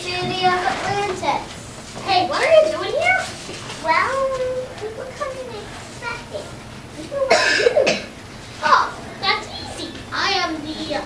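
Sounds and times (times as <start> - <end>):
distant children's voices: 0.0 - 11.0.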